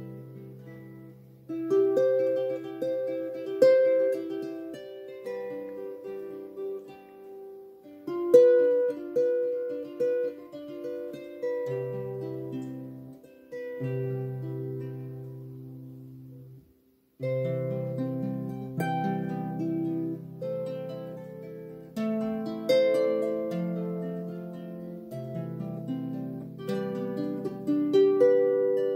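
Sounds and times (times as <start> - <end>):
harp being played: 0.0 - 28.9.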